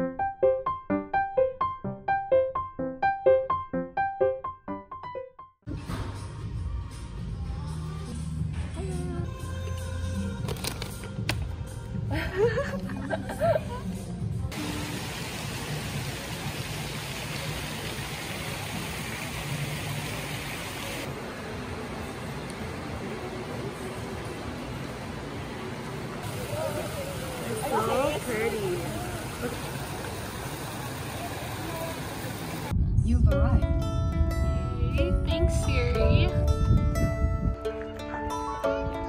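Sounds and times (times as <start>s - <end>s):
plucked-string background music: 33.1s - 39.0s.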